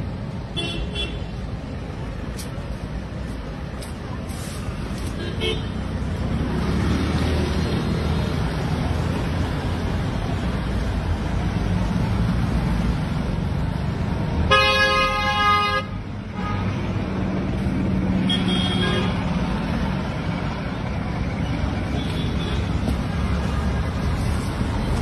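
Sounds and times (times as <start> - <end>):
road traffic: 0.0 - 25.0
vehicle horn: 14.5 - 16.7.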